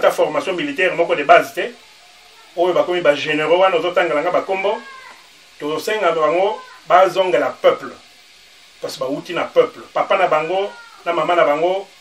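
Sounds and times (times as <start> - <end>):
man speaking: 0.0 - 1.9, 2.5 - 5.0, 5.6 - 8.1, 8.8 - 12.0.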